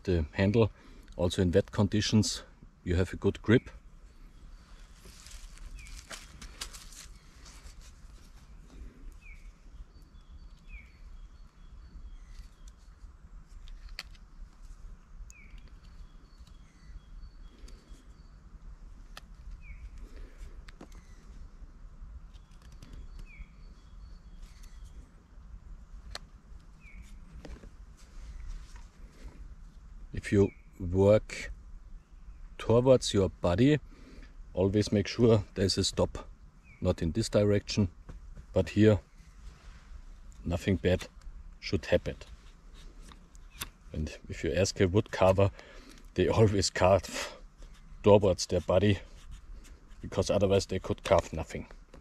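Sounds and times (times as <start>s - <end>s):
small birds chirping: 0.0s - 52.0s.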